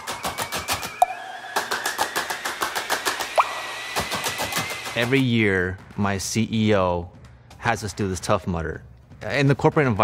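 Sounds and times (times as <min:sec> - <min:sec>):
short rising bloop: 0:03.4 - 0:04.4.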